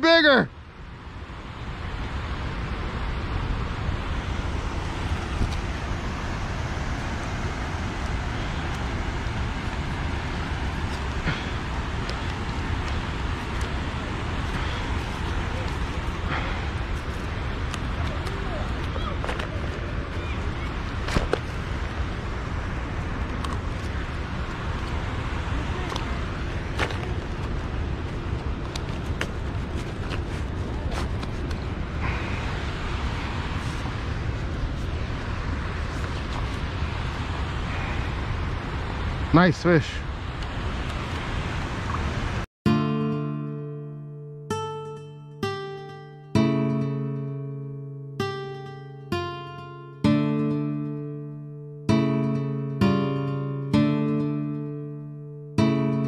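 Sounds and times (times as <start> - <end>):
moving water: 0.0 - 42.5
wind on microphone: 0.9 - 39.3.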